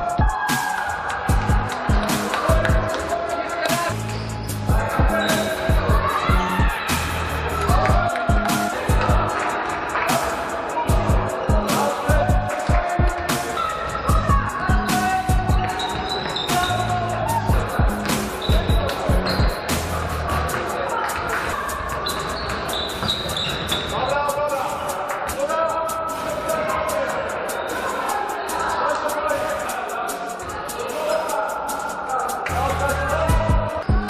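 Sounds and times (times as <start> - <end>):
background music with driving beat: 0.0 - 34.0.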